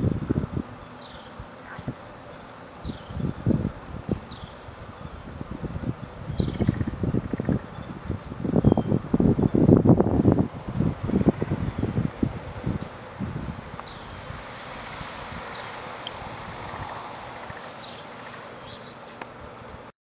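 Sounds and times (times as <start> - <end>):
wind buffeting microphone: 0.0 - 0.8, 2.8 - 17.8
high-pitched insect drone: 0.0 - 19.9.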